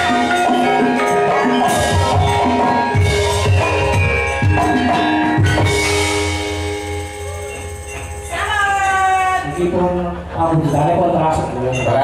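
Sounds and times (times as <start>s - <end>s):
drum strokes: 0.0s - 9.1s
ringing metallophone tones: 0.0s - 11.0s.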